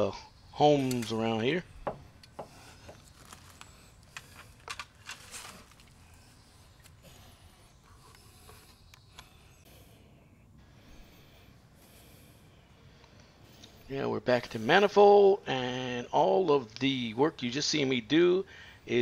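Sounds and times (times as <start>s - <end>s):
low steady background: 0.0s - 19.0s
tools handling metal pipe fittings: 0.7s - 6.0s.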